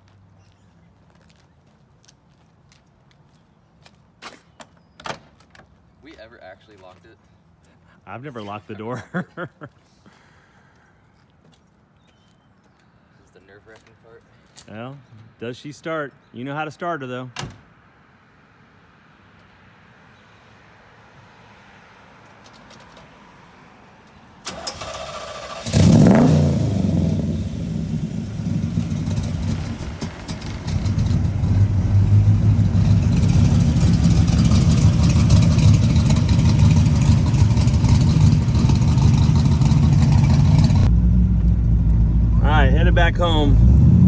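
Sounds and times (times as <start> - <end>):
car starter cranking: 24.4 - 26.6
car engine running: 25.8 - 43.5.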